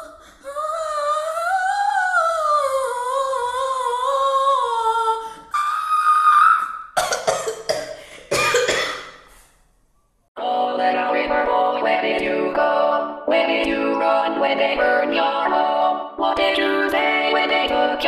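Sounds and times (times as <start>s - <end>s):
woman singing wordless melody: 0.0s - 6.8s, 10.4s - 18.0s.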